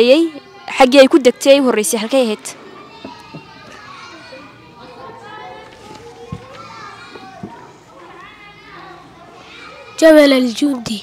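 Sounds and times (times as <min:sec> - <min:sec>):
children talking quietly: 0:00.0 - 0:11.0.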